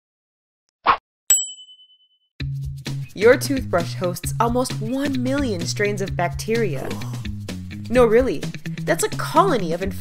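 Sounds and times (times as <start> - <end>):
high-pitched ding: 1.3 - 2.0.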